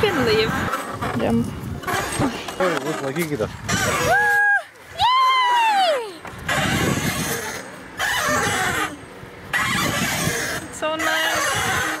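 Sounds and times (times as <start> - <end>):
wind rushing over microphone: 0.0 - 2.4, 6.3 - 12.0.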